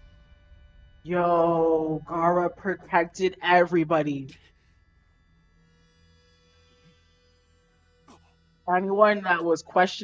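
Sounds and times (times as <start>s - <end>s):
thin steady tone: 0.0s - 4.5s, 5.5s - 10.0s.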